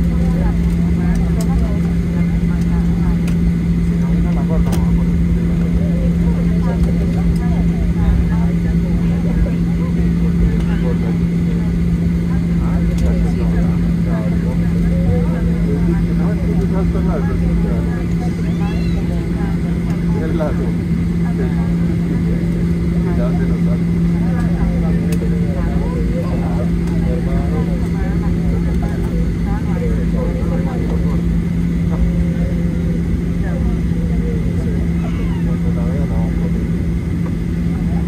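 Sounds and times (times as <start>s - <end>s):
airplane engines humming: 0.0s - 38.0s
indistinct voices talking: 0.0s - 38.0s.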